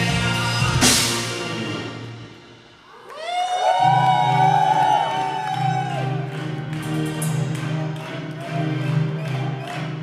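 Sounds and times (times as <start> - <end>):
live band music: 0.0 - 2.9, 5.5 - 10.0.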